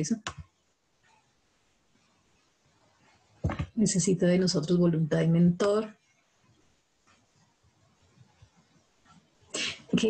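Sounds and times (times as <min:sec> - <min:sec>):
person speaking: 0:00.0 - 0:00.5, 0:03.4 - 0:06.0, 0:09.6 - 0:10.0.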